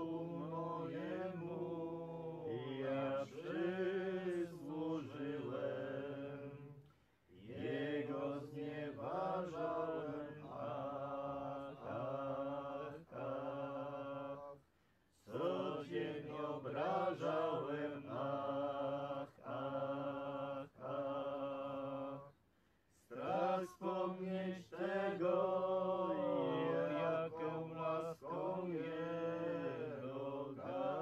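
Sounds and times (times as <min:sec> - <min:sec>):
group singing a hymn: 0:00.0 - 0:22.4, 0:23.0 - 0:31.0.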